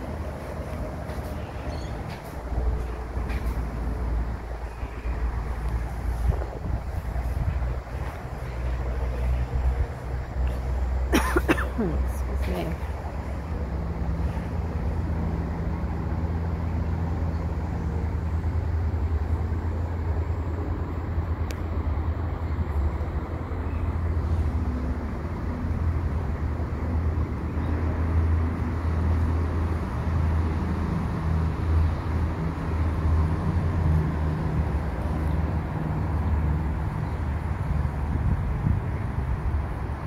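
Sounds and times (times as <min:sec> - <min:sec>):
low outdoor rumble: 0:00.0 - 0:40.0.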